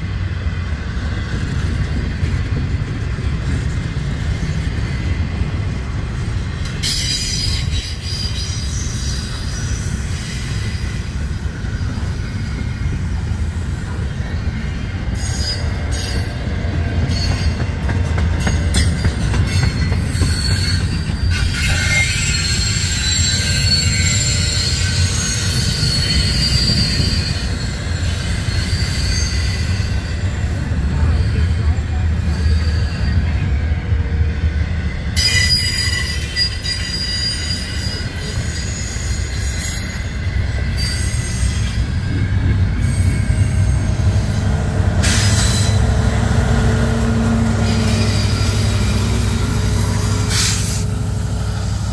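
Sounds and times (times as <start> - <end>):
freight train wheels rumbling: 0.0 - 51.9
wheel squeal: 6.8 - 16.4, 17.0 - 17.8, 18.4 - 33.5, 35.0 - 51.9.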